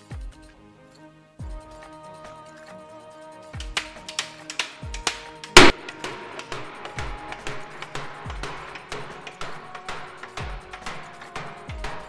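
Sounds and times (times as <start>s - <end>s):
background music with low beat: 0.0s - 12.0s
hammer striking wooden barrel: 3.6s - 12.0s.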